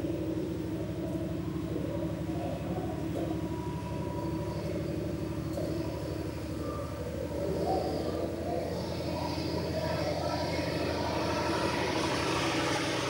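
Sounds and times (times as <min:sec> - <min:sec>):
low mechanical hum: 0:00.0 - 0:13.0.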